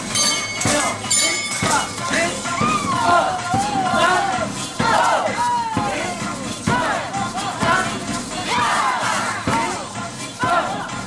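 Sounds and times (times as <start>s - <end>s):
elderly people shouting in unison: 0.7s - 11.0s.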